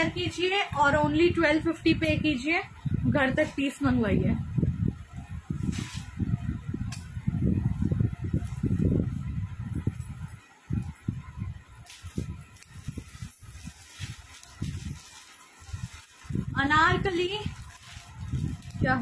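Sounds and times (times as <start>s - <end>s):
plastic packaging crinkling: 11.8s - 19.0s.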